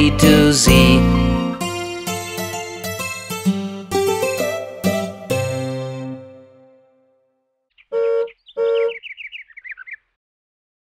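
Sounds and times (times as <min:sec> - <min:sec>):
toy car horn honks: 0:07.9 - 0:09.0.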